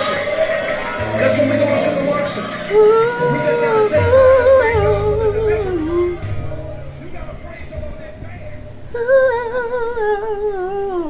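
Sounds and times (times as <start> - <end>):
man singing long note with vibrato: 1.0 - 11.0.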